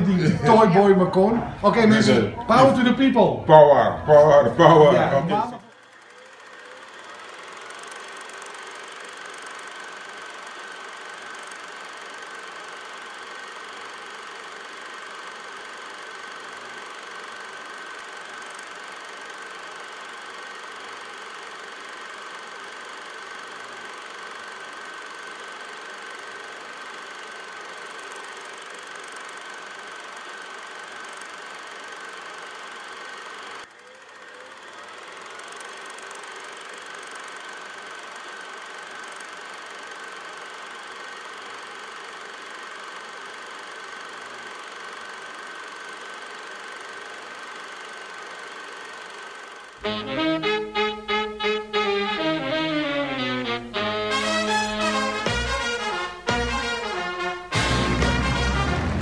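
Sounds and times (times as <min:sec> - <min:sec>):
machine running with high whine: 0:00.0 - 0:59.0.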